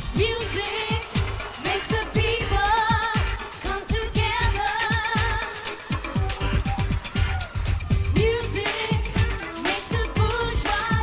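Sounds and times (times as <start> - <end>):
pounding dance beat: 0.0 - 11.0
woman singing with vibrato: 0.1 - 6.0, 8.2 - 11.0.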